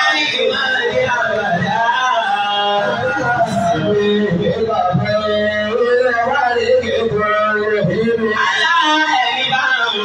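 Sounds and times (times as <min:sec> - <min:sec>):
man singing through loudspeaker: 0:00.0 - 0:10.0.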